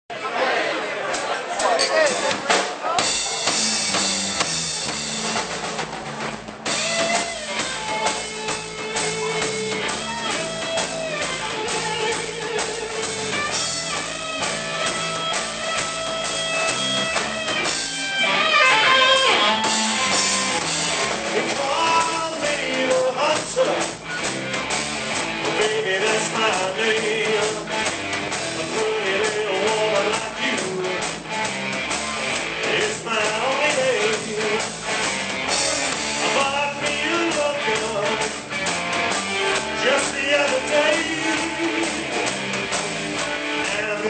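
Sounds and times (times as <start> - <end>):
drum kit beat: 1.0 - 44.0
bass line: 3.0 - 44.0
electric guitar bending notes: 3.0 - 44.0.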